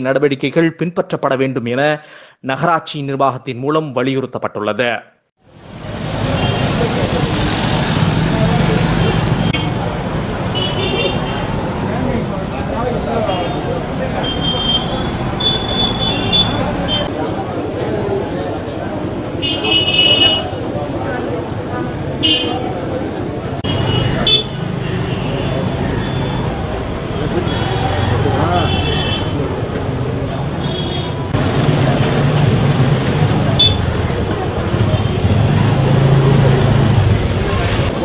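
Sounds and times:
motorbikes and traffic passing: 5.4 - 38.0
crowd chattering: 6.2 - 38.0
vehicle horn toot: 14.2 - 17.1, 19.4 - 20.5, 23.6 - 26.4, 27.4 - 29.4, 33.6 - 33.9.

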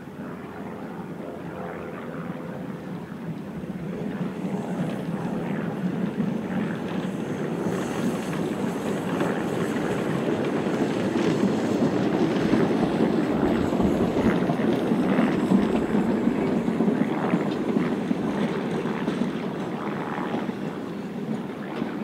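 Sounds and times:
train wheels rumbling on rails: 3.6 - 22.0.

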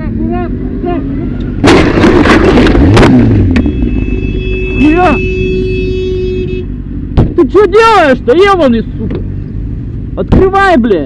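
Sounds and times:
car and motorcycle crash: 1.5 - 4.1
man shouting: 4.6 - 5.6.

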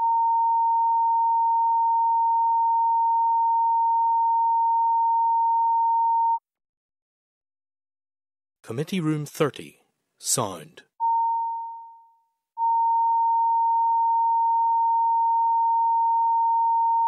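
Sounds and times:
steady sine test tone: 0.0 - 6.4, 11.0 - 17.0.

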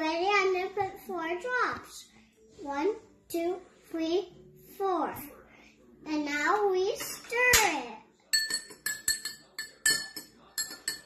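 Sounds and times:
spoon clinking in glass: 8.3 - 11.0.

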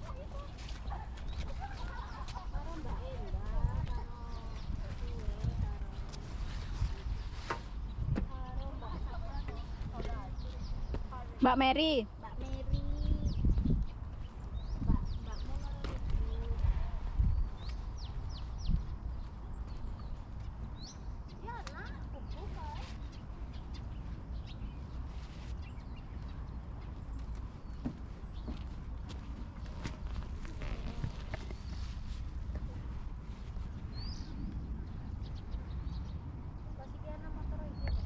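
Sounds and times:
small birds chirping: 0.0 - 38.0
wind rumble on microphone: 0.0 - 38.0.

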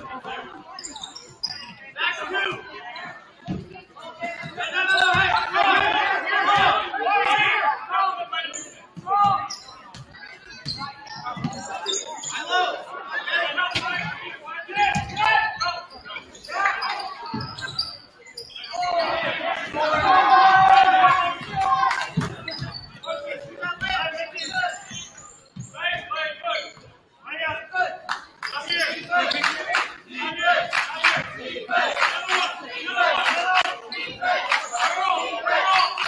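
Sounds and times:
people calling and shouting: 0.0 - 36.0.

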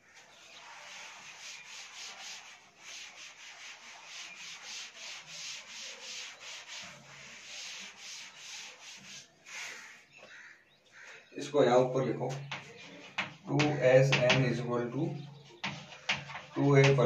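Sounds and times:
cloth wiping a chalkboard: 0.0 - 10.1, 12.3 - 14.4, 15.2 - 17.0.

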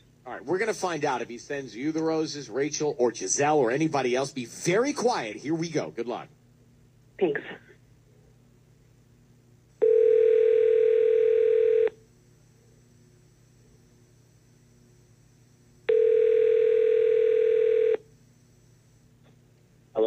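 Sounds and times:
faint low line hum: 0.0 - 20.0
telephone ringback tone: 9.8 - 12.0, 15.9 - 18.0.

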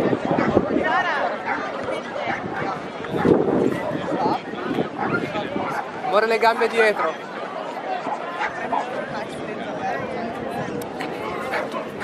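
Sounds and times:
people chattering: 0.0 - 12.0
dog barking: 5.0 - 5.9, 6.5 - 8.9, 11.2 - 12.0.

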